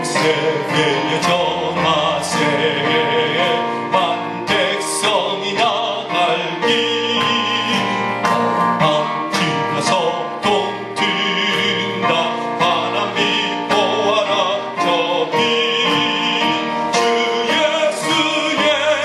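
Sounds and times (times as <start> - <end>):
instrumental accompaniment: 0.0 - 19.0
man singing with vibrato: 0.0 - 19.0.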